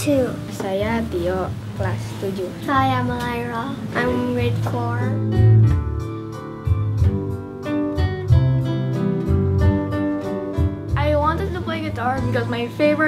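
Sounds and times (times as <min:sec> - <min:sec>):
child speaking: 0:00.0 - 0:05.3
classical guitar playing slow piece: 0:02.4 - 0:13.0.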